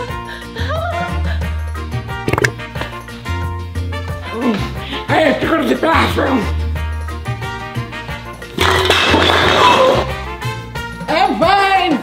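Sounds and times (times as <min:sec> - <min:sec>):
background music: 0:00.0 - 0:12.0
comic fart sound effect: 0:08.5 - 0:10.3.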